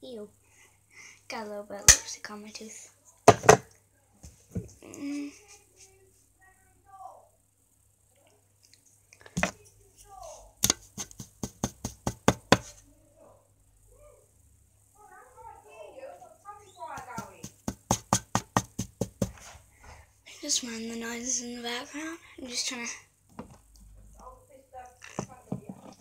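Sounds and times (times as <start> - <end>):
knocking on a door: 10.6 - 12.7, 16.9 - 19.4.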